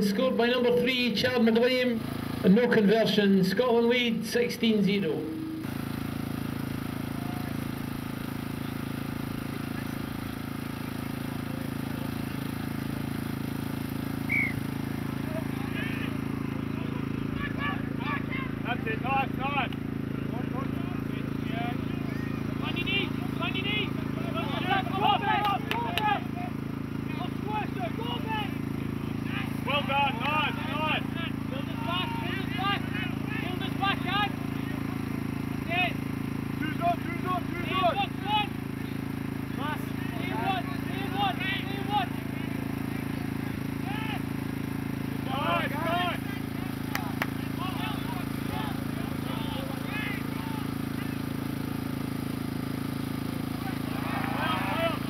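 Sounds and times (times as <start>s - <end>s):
steady low hum: 0.0s - 12.7s
distant voices shouting: 7.0s - 7.8s, 14.2s - 36.0s, 36.6s - 42.5s, 43.1s - 44.4s, 45.2s - 51.2s, 53.5s - 55.0s.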